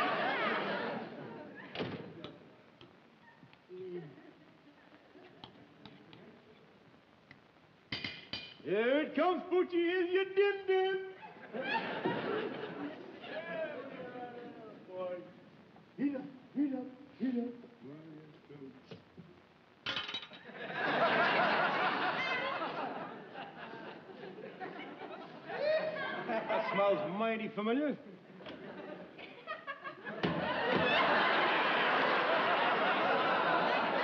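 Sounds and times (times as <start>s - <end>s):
studio audience laughter: 0.0s - 1.8s, 11.3s - 13.3s, 20.5s - 26.8s, 28.4s - 34.0s
man talking: 8.6s - 11.2s, 16.0s - 18.9s, 26.5s - 28.1s
crockery clattering: 19.9s - 20.5s.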